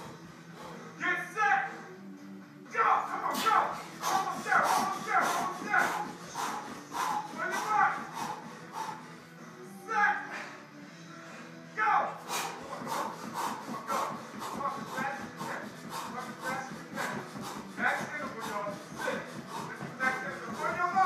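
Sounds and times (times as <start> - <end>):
man panting: 0.0 - 1.0, 3.3 - 9.6, 10.2 - 11.6, 12.2 - 21.0
faint workout music: 0.0 - 21.0.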